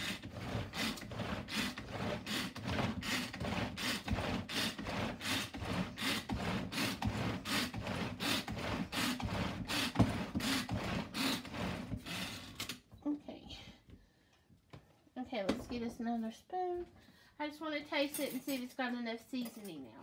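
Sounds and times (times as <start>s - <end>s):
pull-cord mixer whirring: 0.0s - 12.8s.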